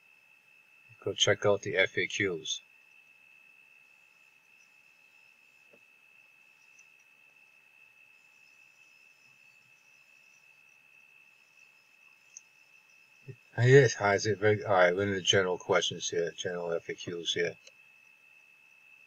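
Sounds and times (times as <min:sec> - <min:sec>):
small tick: 0:05.7 - 0:05.9, 0:06.6 - 0:07.1, 0:12.3 - 0:12.5, 0:17.6 - 0:18.2
high-pitched whine: 0:13.2 - 0:17.7.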